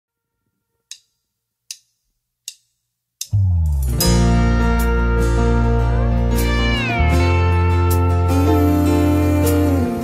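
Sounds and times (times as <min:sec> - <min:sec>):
sharp percussive clicks: 0:00.9 - 0:04.0.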